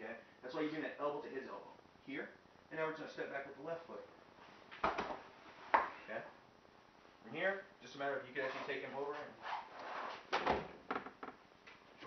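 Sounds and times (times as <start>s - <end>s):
body thudding on floor mat: 4.8s - 5.3s.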